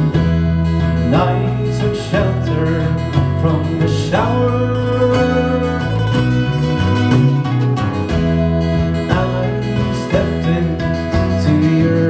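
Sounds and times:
bass guitar: 0.0 - 12.0
mandolin: 0.0 - 12.0
strummed acoustic guitar: 0.0 - 12.0
sliding melody line: 0.1 - 12.0.

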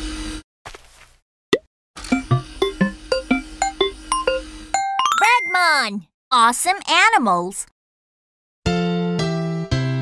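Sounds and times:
jingly children's intro music: 2.1 - 5.8.

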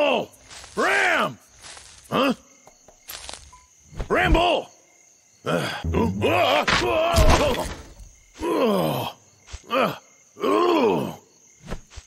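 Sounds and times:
cartoon bear groaning: 5.6 - 7.8.

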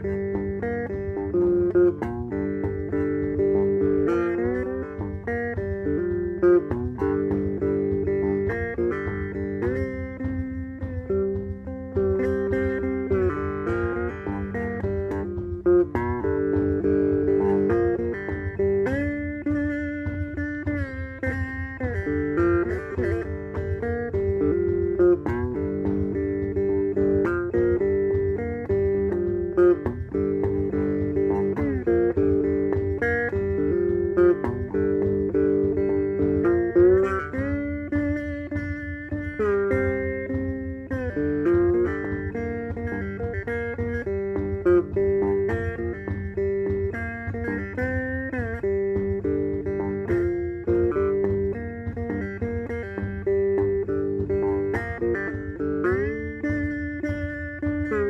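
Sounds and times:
electric guitar sliding lead line: 0.0 - 58.0.

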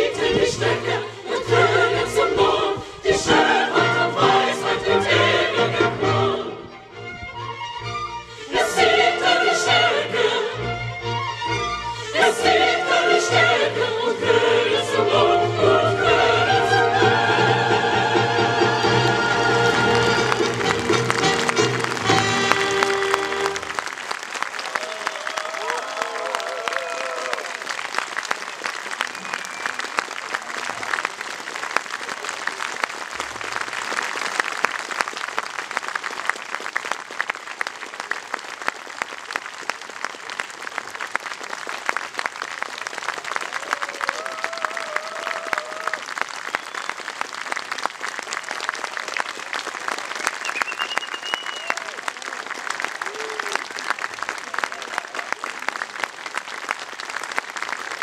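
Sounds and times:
audience applauding: 16.4 - 58.0.

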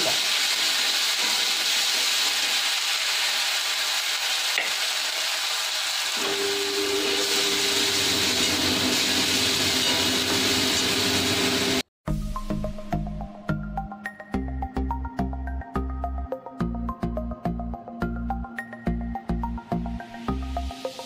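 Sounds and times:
spices sizzling in hot oil: 0.0 - 11.9, 19.4 - 21.0.

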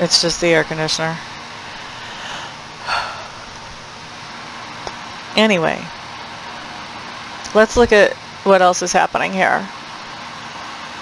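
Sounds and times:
air conditioner hissing: 0.0 - 11.0
short breath: 1.7 - 3.6.

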